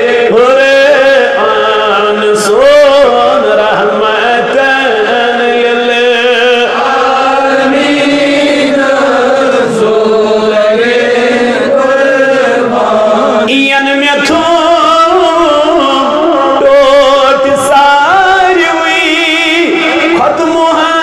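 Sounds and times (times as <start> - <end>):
man chanting into microphone: 0.0 - 21.0.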